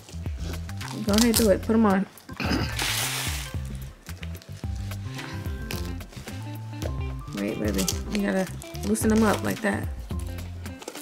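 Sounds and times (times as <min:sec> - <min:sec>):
velcro strap ripping open: 0:00.0 - 0:01.7, 0:02.7 - 0:04.9, 0:07.3 - 0:11.0
background music with bass line: 0:00.0 - 0:11.0.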